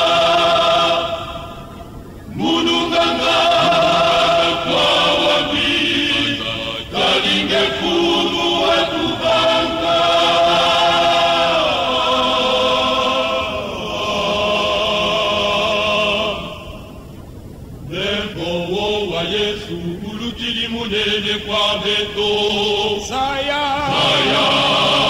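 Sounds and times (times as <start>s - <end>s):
male choir singing: 0.0s - 17.0s, 17.8s - 25.0s.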